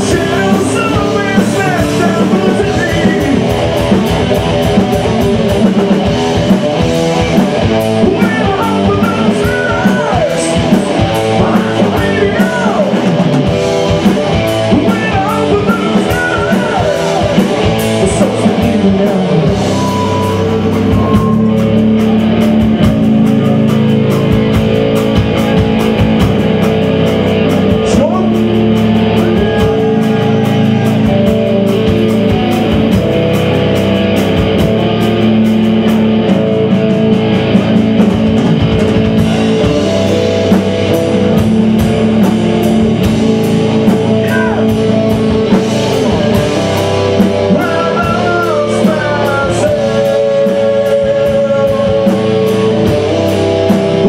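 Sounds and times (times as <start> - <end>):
live metal band playing: 0.0 - 54.0
rapid drumming: 0.0 - 54.0.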